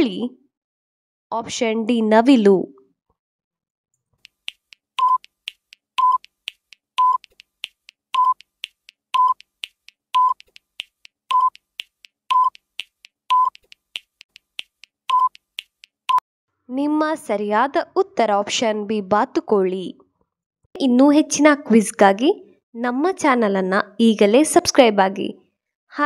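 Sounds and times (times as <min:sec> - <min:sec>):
clock-like ticking: 0:04.2 - 0:16.2
short beeps: 0:05.0 - 0:05.3, 0:06.0 - 0:06.3, 0:07.0 - 0:07.2, 0:08.2 - 0:08.4, 0:09.2 - 0:09.4, 0:10.2 - 0:10.4, 0:11.3 - 0:11.6, 0:12.3 - 0:12.6, 0:13.3 - 0:13.6.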